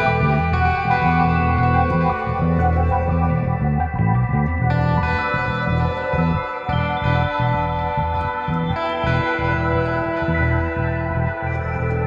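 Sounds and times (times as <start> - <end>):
bass notes: 0.0 - 12.0
guitar through effects: 0.0 - 12.0
sustained chords: 0.0 - 12.0.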